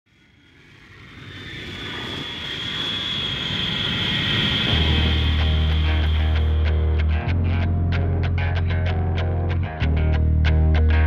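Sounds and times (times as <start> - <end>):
jet airliner engine whine: 0.1 - 7.7.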